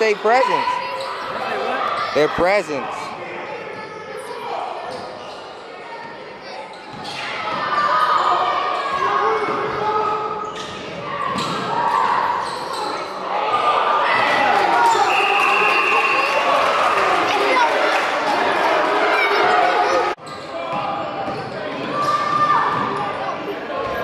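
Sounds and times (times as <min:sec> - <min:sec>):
people talking and calling out: 0:00.0 - 0:24.0.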